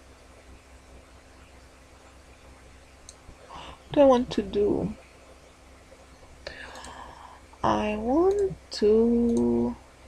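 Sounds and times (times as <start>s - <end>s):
low steady hum: 0.0s - 10.0s
faint whisper-like breath: 6.4s - 7.6s.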